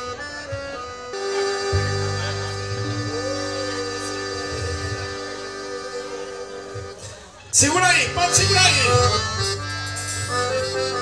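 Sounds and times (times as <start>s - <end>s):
deep bass notes: 0.0s - 7.0s, 7.8s - 11.0s
band playing slow chords: 0.0s - 11.0s.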